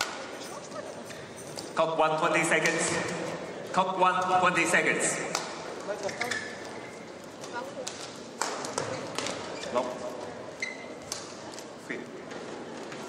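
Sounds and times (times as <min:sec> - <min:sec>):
shoes squeaking on court: 0:08.7 - 0:11.4.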